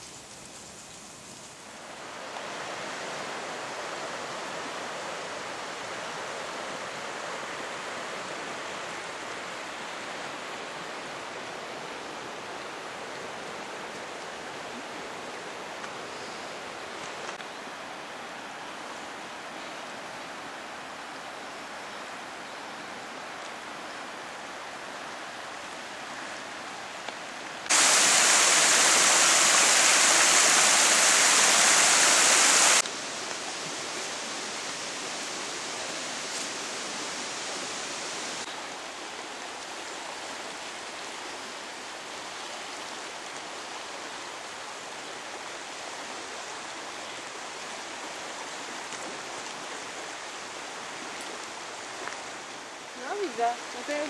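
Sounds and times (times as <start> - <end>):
river rushing over gravel rapids: 0.0 - 54.0.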